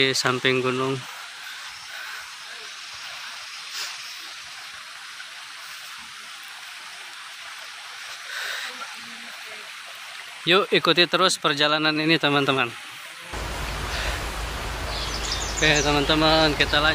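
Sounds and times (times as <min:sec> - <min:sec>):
forest background hiss: 0:00.0 - 0:16.9.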